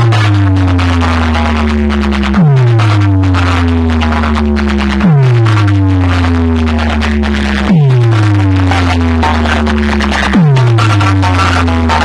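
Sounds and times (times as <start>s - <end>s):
deep bass sweeping downward: 0.0s - 12.0s
electronic dance music: 0.0s - 12.0s.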